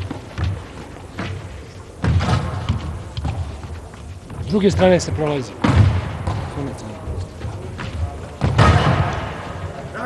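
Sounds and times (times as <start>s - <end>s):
feet on sports hall floor: 0.0s - 10.0s
handball bouncing in a hall: 0.0s - 10.0s.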